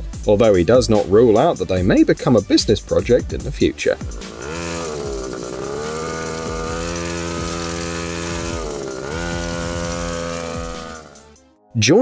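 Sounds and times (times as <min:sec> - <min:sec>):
mini motorbike engine running: 0:03.0 - 0:11.4.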